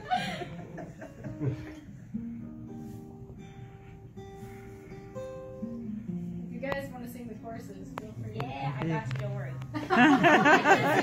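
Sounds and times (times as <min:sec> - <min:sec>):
acoustic guitar strumming: 0:01.1 - 0:11.0.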